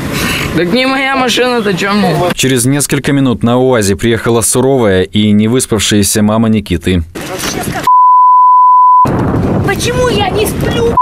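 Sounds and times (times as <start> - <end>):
censor bleep tone: 7.9 - 9.1.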